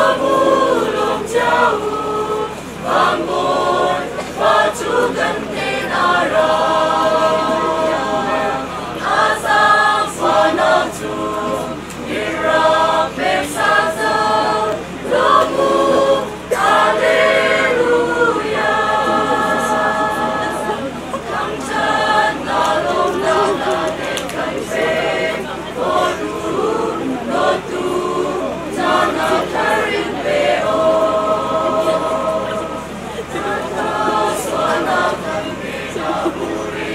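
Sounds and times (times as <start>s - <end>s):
mixed choir singing: 0.0s - 36.9s.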